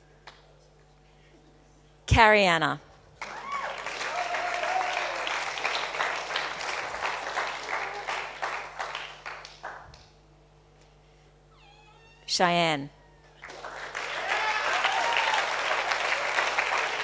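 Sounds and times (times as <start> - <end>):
high whoops: 3.2 - 5.5, 7.5 - 8.4, 13.0 - 17.0
audience applauding: 3.2 - 9.9, 13.4 - 17.0.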